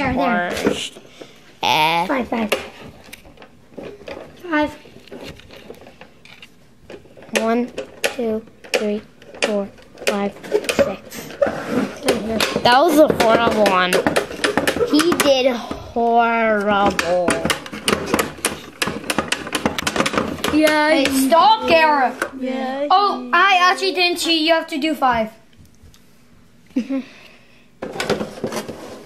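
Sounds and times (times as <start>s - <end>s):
child's voice: 1.6s - 2.5s, 14.8s - 17.4s, 20.5s - 25.4s
hard objects clicking and clattering: 2.3s - 15.8s, 16.5s - 22.4s, 27.8s - 28.8s
rapid plastic clicking: 16.8s - 21.2s.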